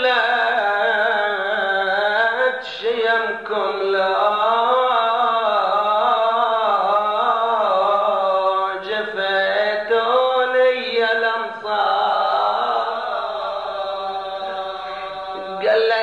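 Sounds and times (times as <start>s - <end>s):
man chanting melodically: 0.0s - 16.0s.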